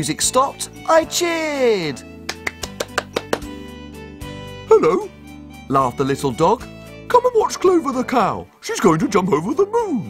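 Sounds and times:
soft background music: 0.0s - 10.0s
hand claps: 2.2s - 3.6s.

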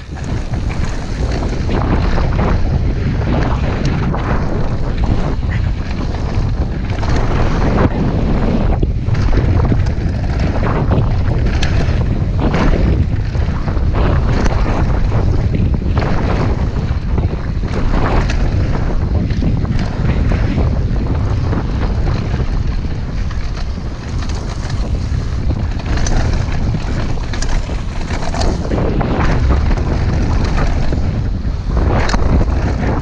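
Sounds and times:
bike knocks and rattles: 0.0s - 33.0s
bike tyres rumbling over gravel: 0.0s - 33.0s
wind buffeting microphone: 0.0s - 33.0s.

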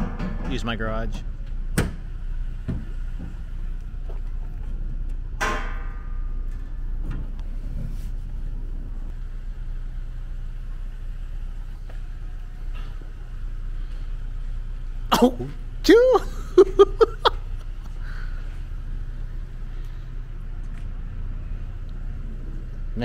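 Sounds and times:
vehicle engine idling: 0.0s - 23.0s
sharp knock with ringing: 5.4s - 6.3s.

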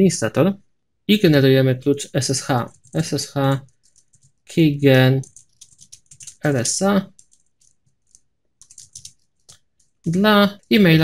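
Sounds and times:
computer keyboard typing: 2.2s - 11.0s.

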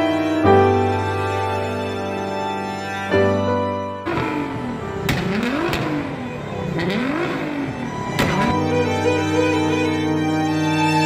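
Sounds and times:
car engine revving: 4.0s - 11.0s
exhaust bangs: 4.1s - 9.8s.

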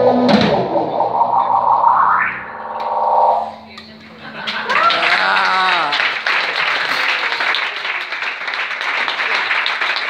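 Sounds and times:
people clapping: 3.7s - 10.0s
person calling out: 5.1s - 6.0s.

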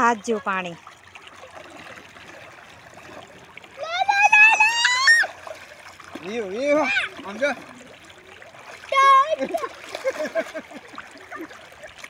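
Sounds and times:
river water splashing: 0.0s - 12.0s
child's high-pitched squeal: 3.8s - 5.4s.

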